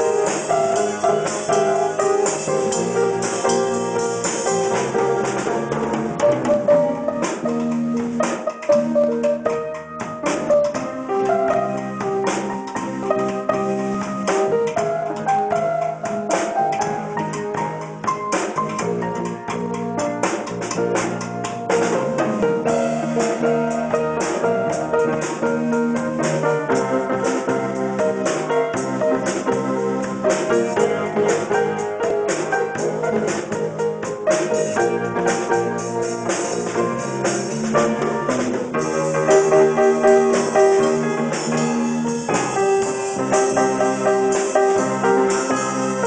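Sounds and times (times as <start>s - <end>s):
acoustic drum kit: 0.0s - 46.0s
held pitched chords: 0.0s - 46.0s.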